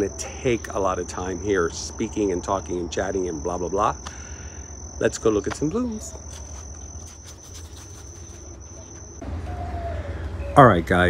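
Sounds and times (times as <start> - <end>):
high-pitched insect trill: 0.0 - 9.2.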